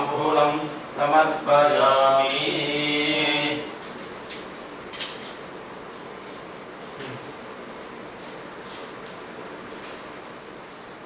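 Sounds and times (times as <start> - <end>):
open fire crackling: 0.0 - 11.0.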